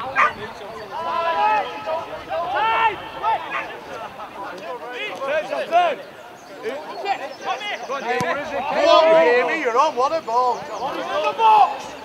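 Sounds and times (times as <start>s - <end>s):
voices shouting indistinctly: 0.0s - 12.0s.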